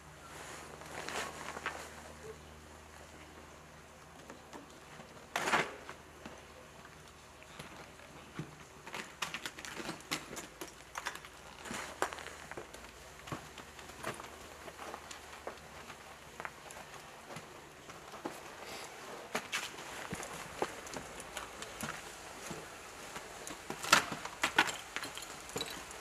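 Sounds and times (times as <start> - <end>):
rope being handled: 0.4 - 2.2.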